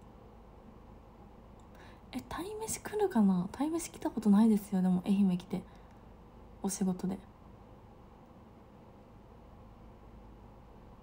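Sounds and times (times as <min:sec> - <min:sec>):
woman speaking softly: 0:02.1 - 0:05.7, 0:06.6 - 0:07.3.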